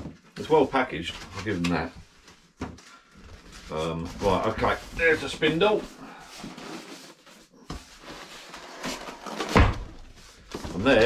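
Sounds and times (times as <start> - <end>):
cardboard and polystyrene rustling: 0.1 - 11.0.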